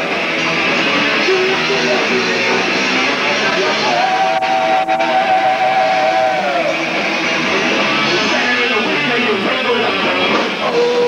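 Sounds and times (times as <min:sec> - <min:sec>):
heavy metal band playing loudly: 0:00.0 - 0:11.0.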